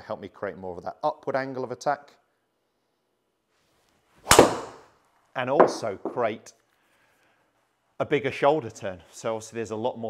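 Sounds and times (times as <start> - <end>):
golf club striking ball: 4.3 - 4.8, 5.6 - 6.2.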